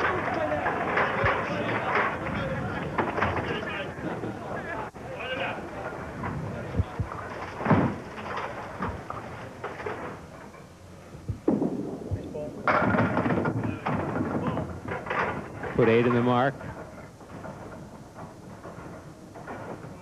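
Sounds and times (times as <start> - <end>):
bowling ball striking pins: 11.4 - 19.9.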